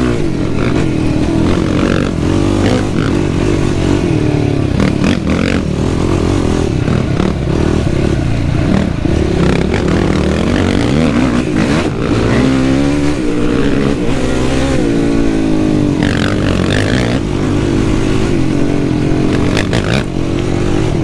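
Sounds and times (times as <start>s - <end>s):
quad engine revving under load: 0.0s - 21.0s.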